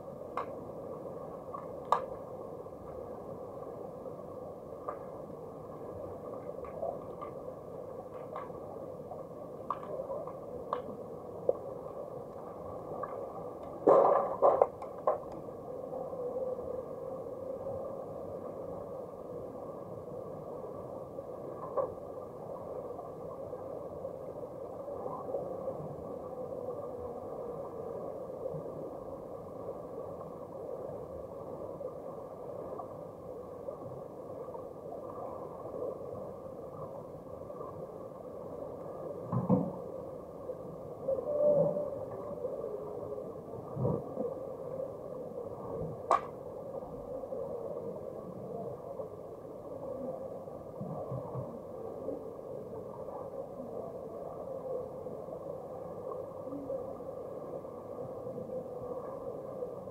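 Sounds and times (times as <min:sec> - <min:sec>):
faint hum: 0:00.0 - 0:59.9
muffled underwater wash: 0:00.0 - 0:59.9.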